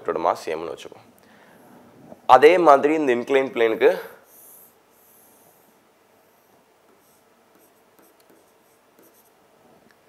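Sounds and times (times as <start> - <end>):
stylus scratching on touchscreen: 6.4 - 9.4.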